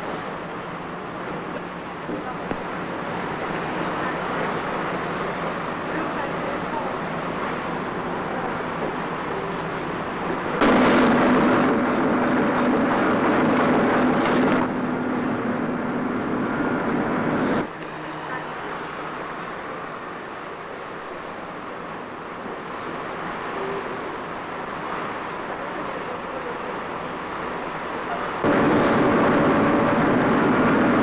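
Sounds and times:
steady background noise: 0.0s - 31.0s.

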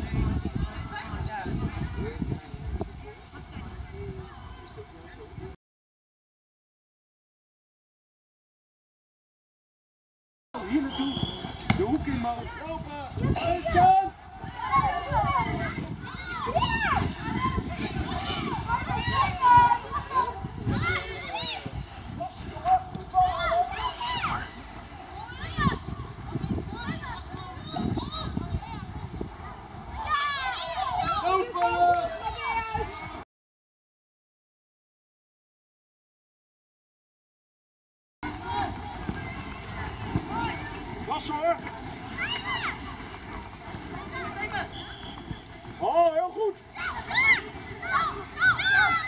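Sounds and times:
steady outdoor hiss: 0.0s - 5.6s, 10.6s - 33.2s, 38.2s - 49.0s
young players calling and shouting: 10.6s - 33.2s, 38.2s - 49.0s
distant children shouting: 38.3s - 45.4s, 46.7s - 49.0s.

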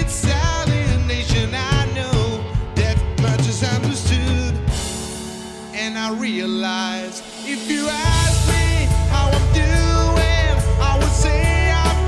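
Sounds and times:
man singing: 0.0s - 5.0s, 5.6s - 12.0s
drum kit playing: 0.0s - 12.0s
pop-rock song recording: 0.0s - 12.0s.

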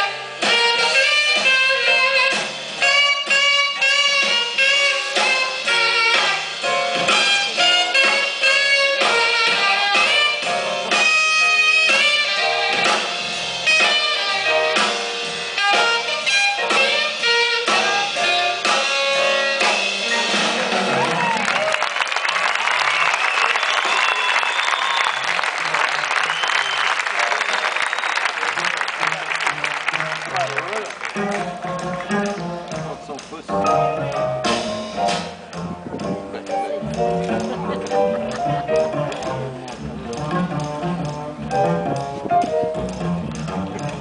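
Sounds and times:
jazz big band playing: 0.0s - 23.0s, 24.0s - 44.0s
audience applause with cheering: 20.5s - 32.1s.

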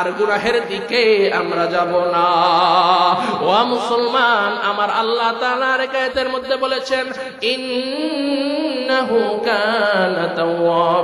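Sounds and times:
man chanting through microphone: 0.0s - 11.0s.

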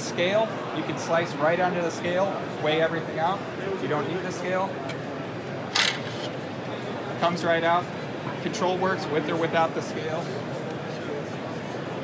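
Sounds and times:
murmur of exhibition hall crowd: 0.0s - 12.0s
sharp plastic clack: 5.7s - 6.4s.

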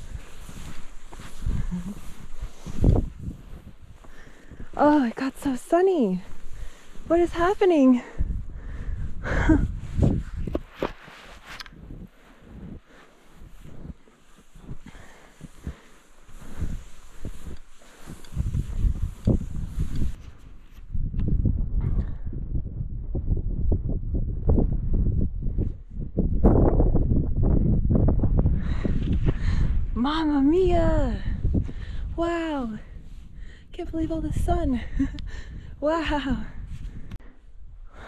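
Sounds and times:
skis sliding through snow: 0.0s - 7.9s, 9.9s - 20.8s.

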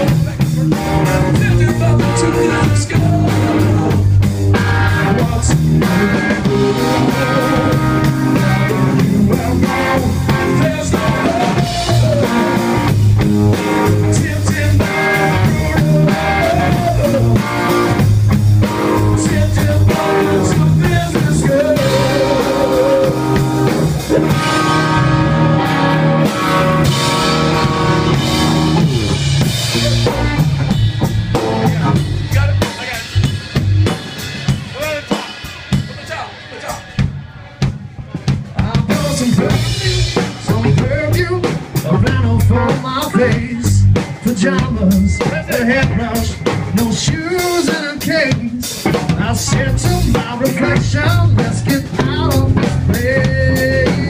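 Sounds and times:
drum kit: 0.0s - 54.0s
electric guitar lead: 0.0s - 54.0s.

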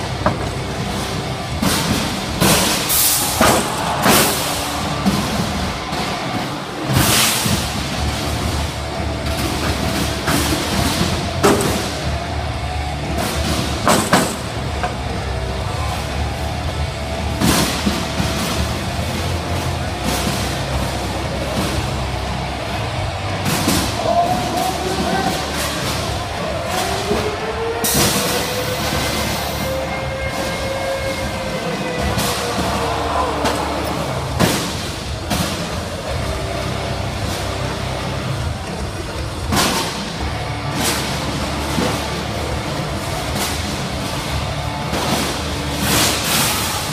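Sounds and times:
drive motor rumble: 0.0s - 30.4s
background music: 0.0s - 46.9s.

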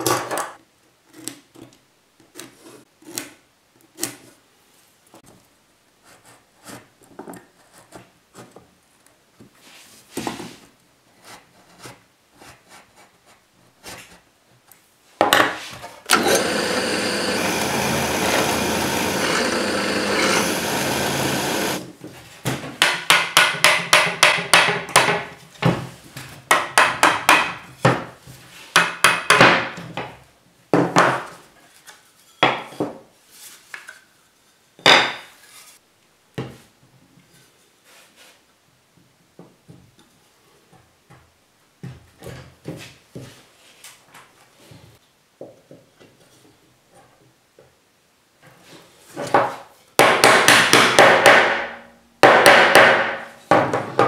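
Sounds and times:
power tool running: 16.1s - 21.8s.

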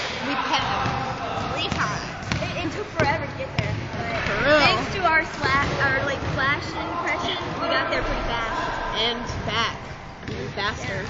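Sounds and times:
voices talking: 0.0s - 11.0s
basketball bouncing on wooden floor: 0.8s - 4.4s.

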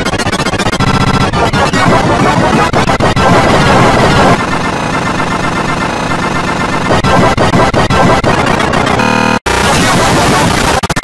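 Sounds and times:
buzzy stuttering tone: 0.0s - 11.0s
distorted cartoon soundtrack: 0.0s - 11.0s.

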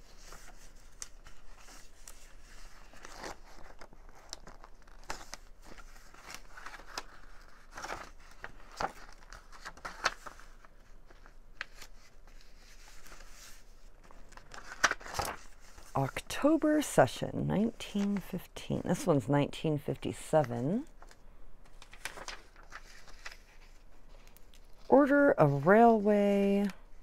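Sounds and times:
stiff paper rustling: 0.0s - 16.4s, 20.5s - 27.0s.

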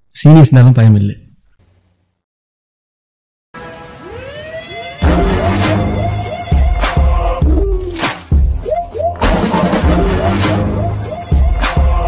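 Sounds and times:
synth chord with pitch glides: 3.6s - 6.8s.

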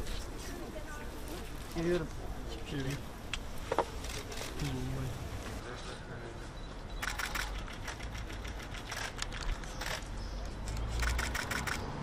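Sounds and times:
camera shutters clicking: 7.0s - 11.9s.

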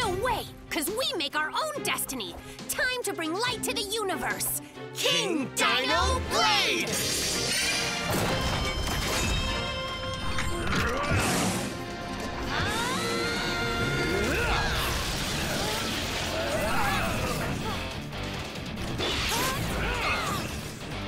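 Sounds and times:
dramatic background music: 0.0s - 21.0s.

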